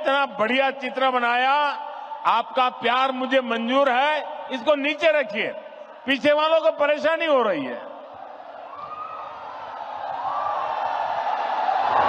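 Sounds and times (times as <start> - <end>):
crowd cheering and shouting: 8.0 - 12.0.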